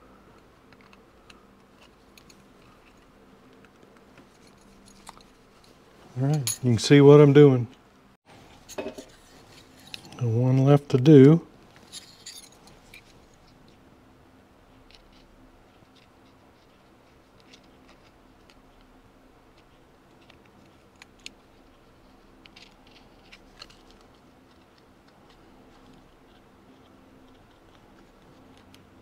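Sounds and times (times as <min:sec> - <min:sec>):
faint steady hum: 0:00.0 - 0:29.0
scalpel clicking and scratching: 0:20.1 - 0:28.9.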